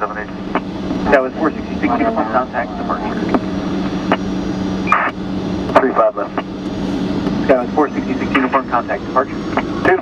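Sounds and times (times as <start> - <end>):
radio hiss with steady hum: 0.0 - 6.6, 7.4 - 10.0.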